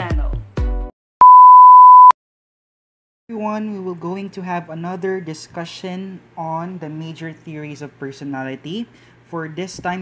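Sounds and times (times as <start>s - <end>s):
pure test tone beep: 1.2s - 2.2s.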